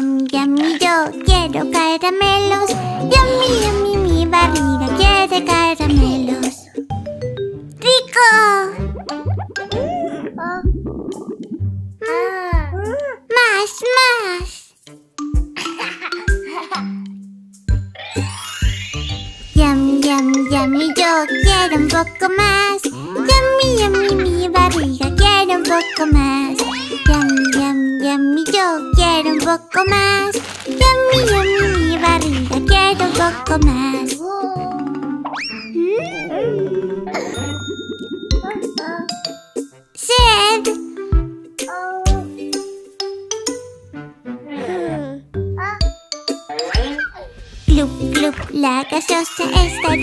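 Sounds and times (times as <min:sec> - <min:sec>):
child voice singing: 0:00.0 - 0:06.6, 0:19.6 - 0:34.9
wobbling sliding tones: 0:35.6 - 0:39.6.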